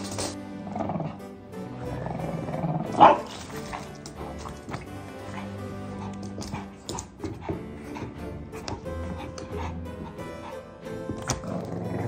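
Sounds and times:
background music: 0:00.0 - 0:12.0
dog play bark: 0:02.9 - 0:07.2.

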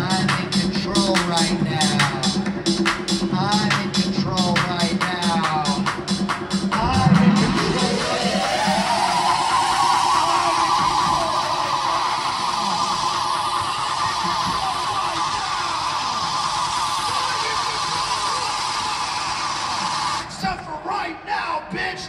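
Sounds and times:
live electronic music: 0:00.0 - 0:20.9.

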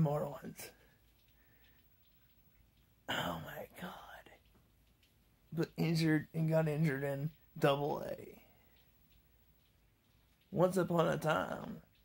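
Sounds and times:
man whispering: 0:00.0 - 0:01.0, 0:03.0 - 0:04.6, 0:05.5 - 0:08.8, 0:10.5 - 0:11.9.

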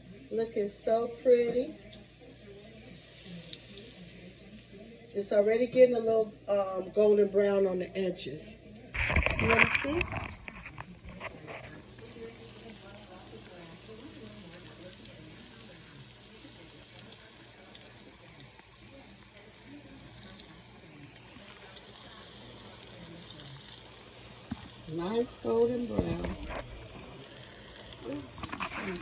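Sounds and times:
oil sizzling in a skillet: 0:00.0 - 0:29.0.

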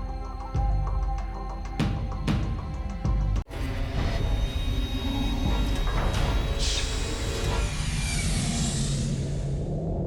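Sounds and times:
low steady music tone: 0:00.0 - 0:08.0.

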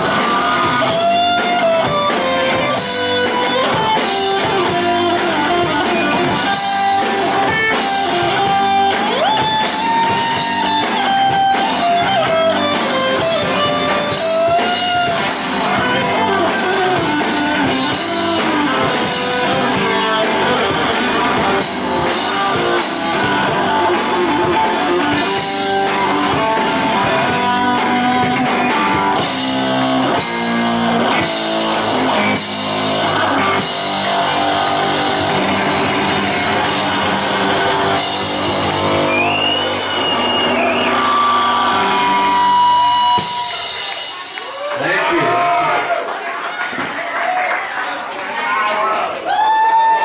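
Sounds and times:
rock band playing: 0:00.0 - 0:46.9.

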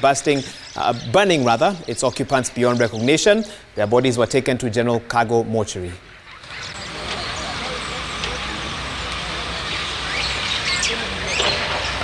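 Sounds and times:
faint voices: 0:05.9 - 0:12.0.

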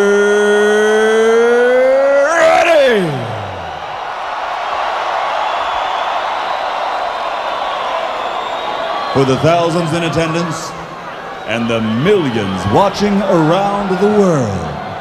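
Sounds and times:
announcer's amplified voice: 0:00.0 - 0:03.5, 0:09.2 - 0:10.8, 0:11.5 - 0:15.0
crowd cheering: 0:00.0 - 0:15.0.

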